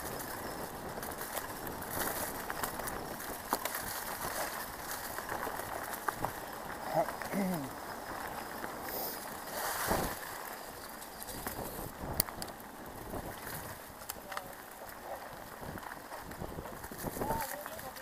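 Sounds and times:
bike rattling and clicking: 0.0s - 18.0s
bike rushing over dirt trail: 0.0s - 18.0s.

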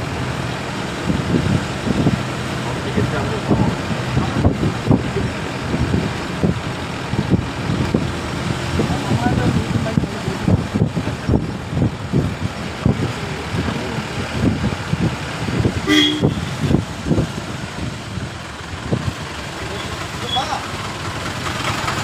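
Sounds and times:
vehicle road noise rumbling: 0.0s - 22.0s
vehicle horn toot: 15.8s - 16.6s.

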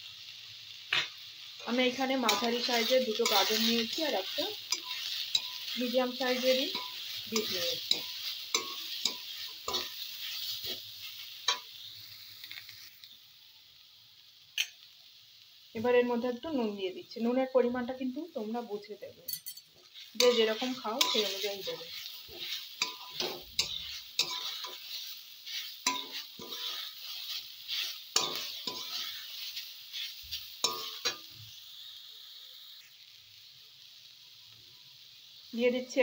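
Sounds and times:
vegetables sizzling in oil: 0.0s - 36.0s
metal spatula scraping a pan: 1.6s - 11.8s, 19.4s - 31.4s.

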